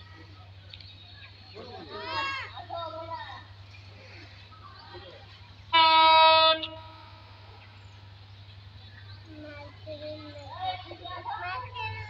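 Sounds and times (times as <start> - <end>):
train horn blast: 5.7 - 7.4.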